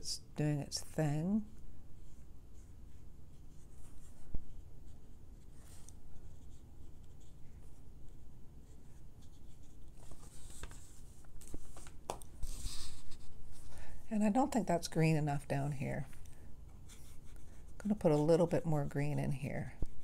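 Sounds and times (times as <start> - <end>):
brush scratching on paper: 16.8 - 19.0.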